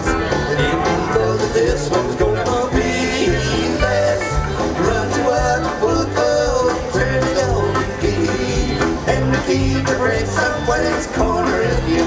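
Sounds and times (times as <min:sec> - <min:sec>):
country-rock band playing: 0:00.0 - 0:12.0.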